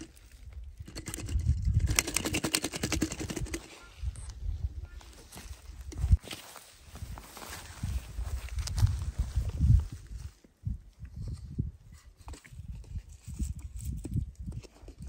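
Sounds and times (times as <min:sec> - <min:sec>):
footsteps on dry grass and stones: 0:03.6 - 0:14.3
hand rustling in grass: 0:05.0 - 0:11.6.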